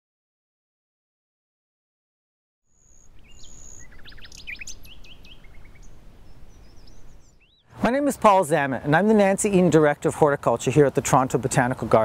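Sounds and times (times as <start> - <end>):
songbirds chirping: 2.7 - 12.0
man speaking: 7.8 - 12.0.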